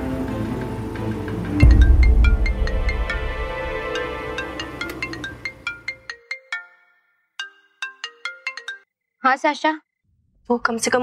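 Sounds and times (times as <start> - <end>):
background music: 0.0 - 8.8
mobile phone ringtone: 4.6 - 8.9.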